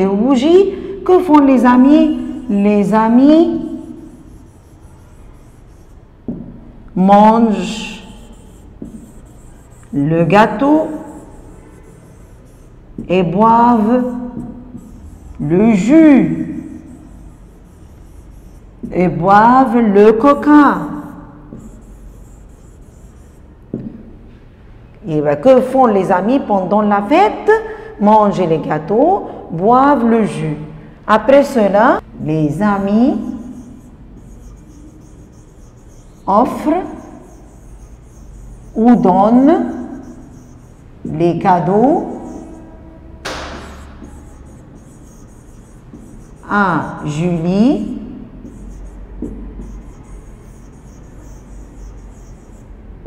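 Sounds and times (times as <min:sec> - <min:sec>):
low room hum: 0:00.0 - 0:53.0
pen scratching on whiteboard: 0:00.4 - 0:24.4, 0:31.5 - 0:53.0.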